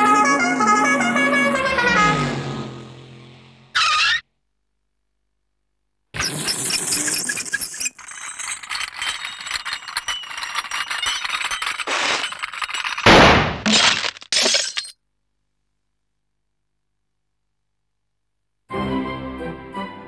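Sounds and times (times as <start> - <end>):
shrill scraping screech: 0.0 - 4.3, 6.2 - 12.9
glass shattering: 6.2 - 15.0.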